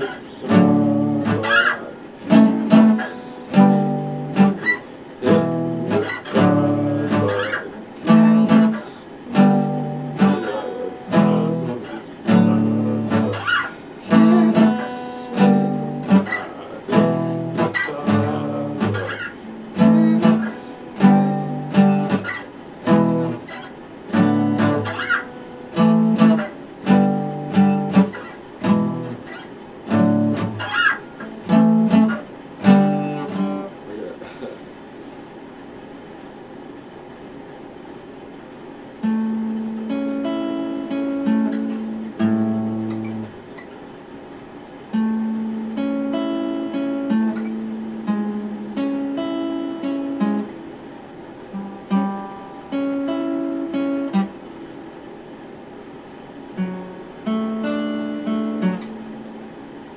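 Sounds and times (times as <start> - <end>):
ringing guitar notes: 0.0 - 33.8, 39.0 - 43.7, 44.9 - 50.7, 51.5 - 54.5, 56.6 - 59.6
acoustic guitar strummed chords: 0.0 - 34.5, 38.3 - 59.9.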